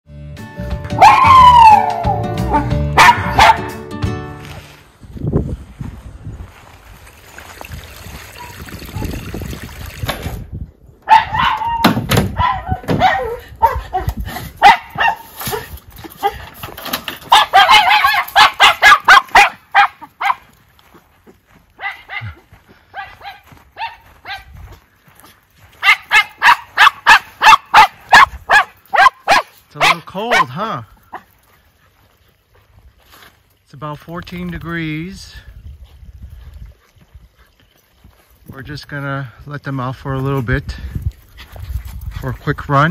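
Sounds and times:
dogs barking: 0:01.0 - 0:03.8, 0:11.0 - 0:16.5, 0:17.2 - 0:20.5, 0:21.8 - 0:24.5, 0:25.8 - 0:31.3.

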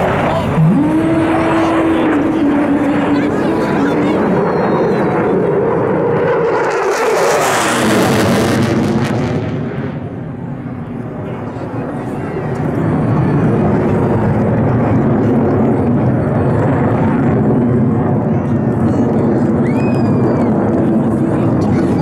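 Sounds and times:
jet noise overhead: 0:00.0 - 0:22.0.

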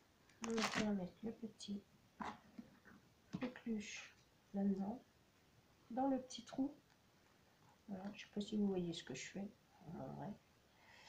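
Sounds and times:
woman speaking quietly: 0:07.9 - 0:10.4.

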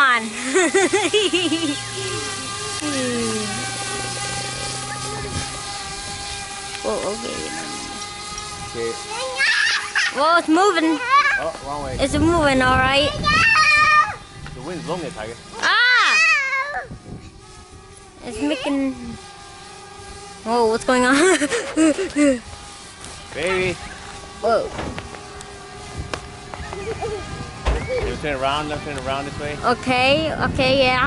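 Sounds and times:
quadcopter propellers whining: 0:00.0 - 0:31.0
high-pitched squealing cry: 0:09.1 - 0:10.2, 0:15.6 - 0:16.9.

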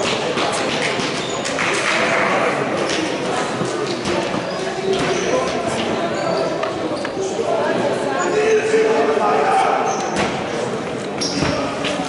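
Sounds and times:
indistinct voices and chatter: 0:00.0 - 0:12.0.

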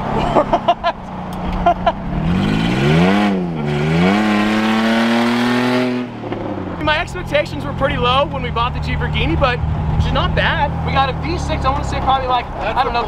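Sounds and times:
engine accelerating hard: 0:00.0 - 0:13.0
road noise: 0:00.0 - 0:13.0.

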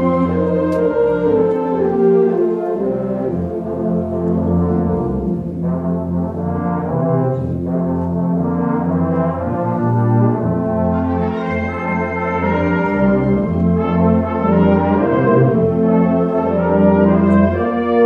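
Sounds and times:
concert band playing brass chords: 0:00.0 - 0:18.0.

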